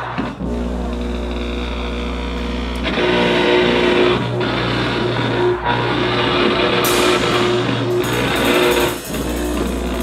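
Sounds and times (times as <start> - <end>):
electric guitar noise drone: 0.0 - 10.0
low amplifier hum: 0.0 - 10.0.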